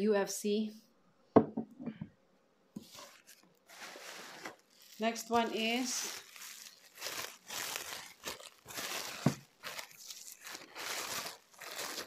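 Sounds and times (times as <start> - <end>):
glass bottle knocking on wood: 1.4 - 2.1
soft plastic rustle: 2.8 - 12.0.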